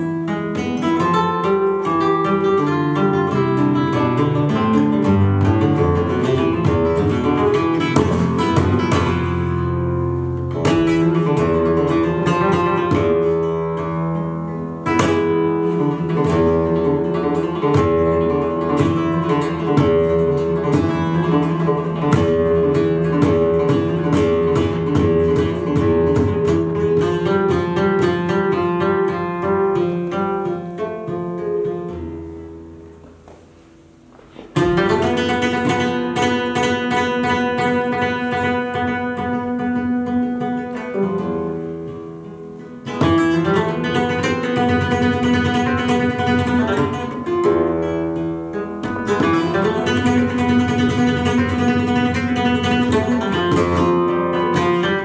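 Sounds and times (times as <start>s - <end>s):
flamenco guitar playing: 0.0s - 55.0s
sharp strummed guitar chords: 0.0s - 55.0s.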